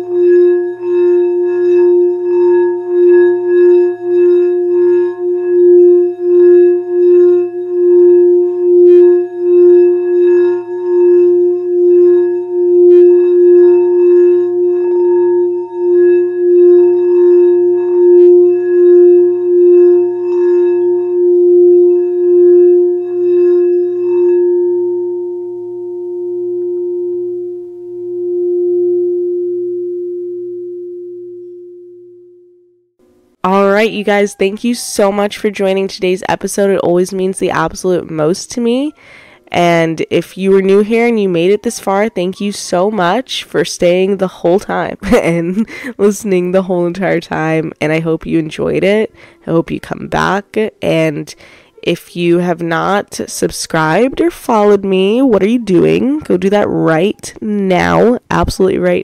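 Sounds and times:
singing bowl ringing tone: 0.0 - 35.8, 36.6 - 43.2, 53.9 - 58.1.

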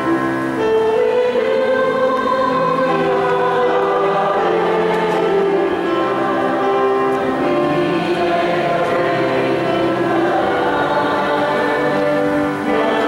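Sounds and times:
church choir singing a hymn: 0.0 - 13.0.

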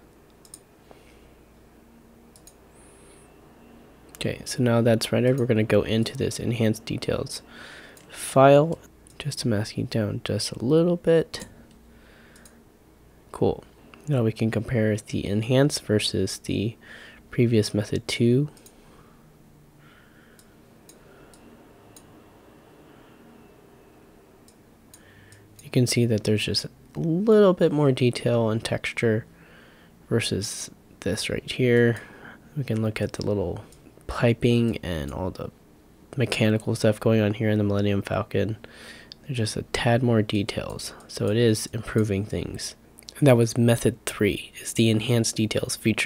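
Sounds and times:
faint computer mouse clicks: 2.3 - 2.6, 12.4 - 12.6.

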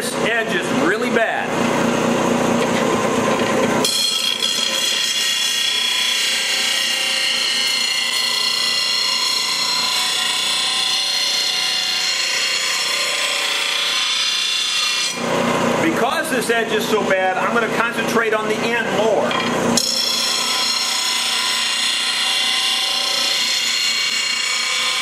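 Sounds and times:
bench grinder grinding metal: 2.2 - 15.8, 19.2 - 25.0.

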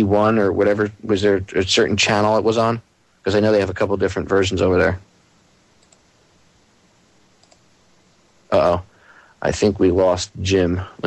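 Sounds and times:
faint hiss: 0.0 - 11.0
tiny clicks: 5.8 - 6.1, 7.4 - 7.7.

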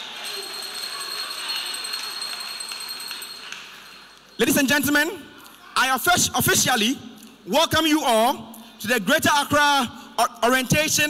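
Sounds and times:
audience applause: 0.0 - 3.9.

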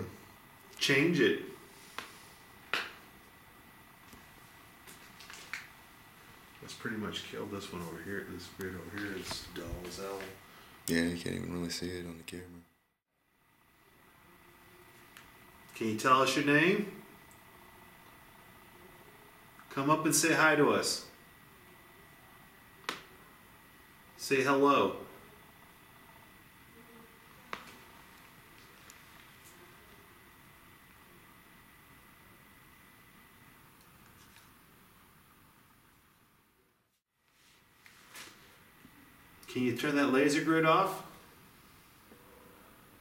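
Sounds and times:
faint high-pitched whine: 0.0 - 43.0.

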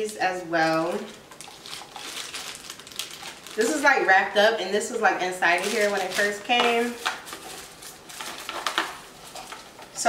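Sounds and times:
small box clicks and rustles: 5.6 - 10.0.

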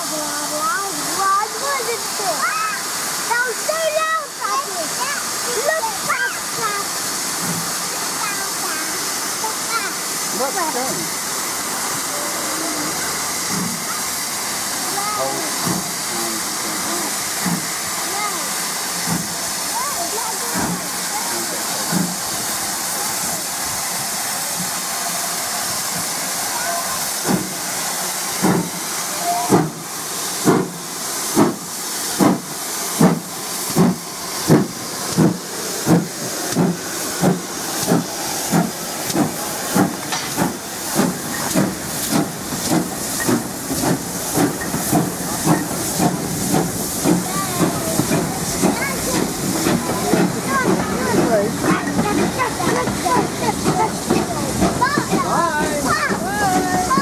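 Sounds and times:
steam hissing: 0.0 - 57.0
steam locomotive chuffs: 0.0 - 57.0.

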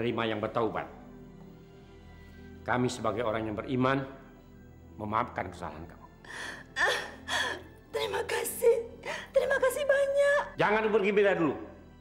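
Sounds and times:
woman crying with gasping sobs: 6.2 - 8.0.

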